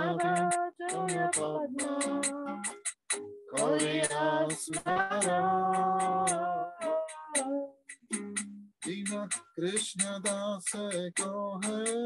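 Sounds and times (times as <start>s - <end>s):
devotional chant singing: 0.0s - 2.4s, 3.6s - 7.6s
classical guitar strumming: 0.0s - 12.0s.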